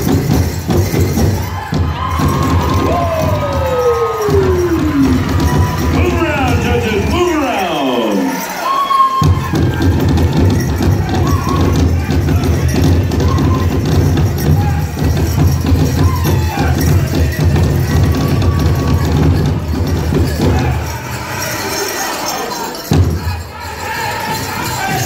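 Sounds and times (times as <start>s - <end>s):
big drum beating rapidly: 0.0s - 7.7s, 9.2s - 21.0s
high singing voices: 2.0s - 9.6s.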